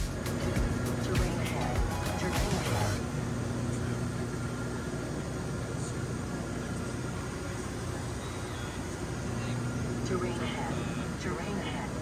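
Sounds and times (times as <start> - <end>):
turboprop plane cabin drone: 0.0 - 12.0.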